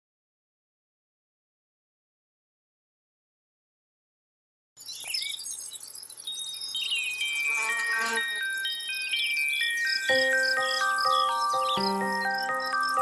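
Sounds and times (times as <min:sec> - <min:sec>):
twittering chirps: 0:04.8 - 0:13.0
descending chime notes: 0:07.3 - 0:13.0
music: 0:08.1 - 0:13.0.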